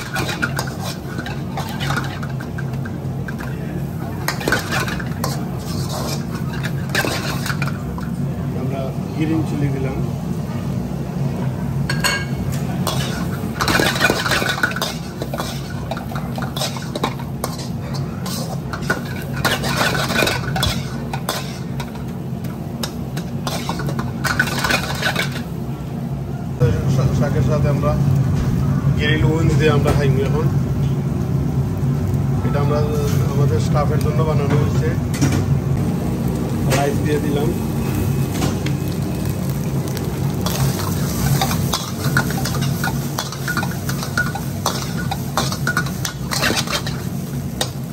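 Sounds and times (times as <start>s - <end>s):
metal spatula scraping a wok: 0.0s - 2.6s, 4.3s - 7.7s, 12.9s - 21.9s, 40.4s - 47.8s
kitchen equipment hum: 0.0s - 47.9s.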